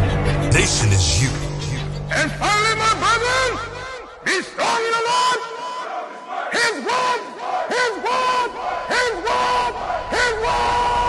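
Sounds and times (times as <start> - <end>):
group shouting in unison: 5.4 - 11.0.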